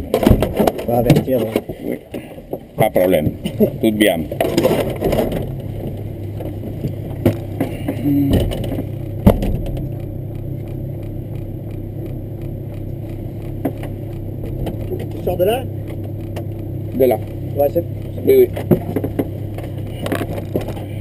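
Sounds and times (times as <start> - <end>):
car engine idling: 0.0 - 21.0
clicks and rattles: 0.0 - 21.0.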